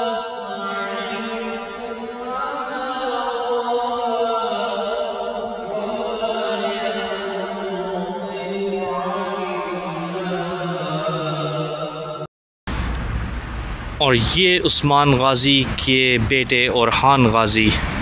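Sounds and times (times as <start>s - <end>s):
man chanting: 0.0s - 12.0s, 14.0s - 18.0s.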